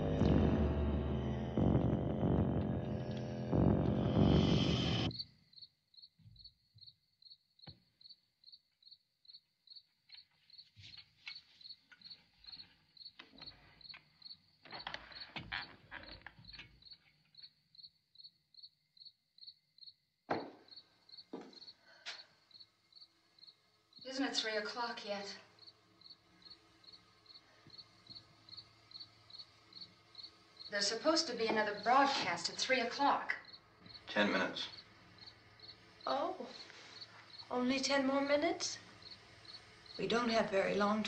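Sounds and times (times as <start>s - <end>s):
crickets chirping: 4.3s - 41.0s.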